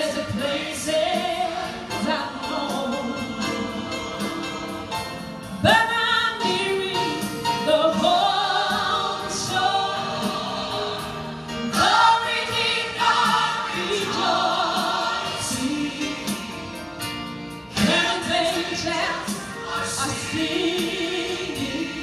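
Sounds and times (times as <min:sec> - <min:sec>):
instrumental accompaniment: 0:00.0 - 0:22.0
voices singing gospel song: 0:00.0 - 0:22.0.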